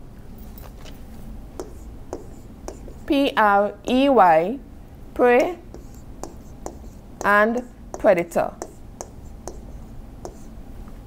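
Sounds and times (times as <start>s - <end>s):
low steady hum: 0.0s - 11.0s
stylus tapping on tablet: 1.6s - 3.1s, 5.4s - 10.5s.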